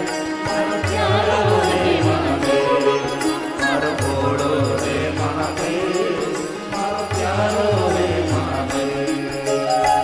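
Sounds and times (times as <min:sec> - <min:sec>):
hand drums beating: 0:00.0 - 0:09.0
devotional music: 0:00.0 - 0:10.0
string and wind instruments: 0:00.0 - 0:10.0.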